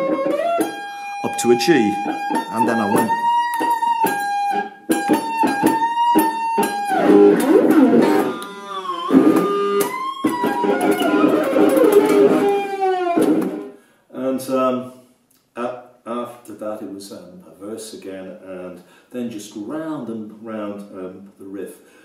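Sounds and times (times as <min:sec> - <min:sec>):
electric guitar lead run: 0:00.0 - 0:13.7.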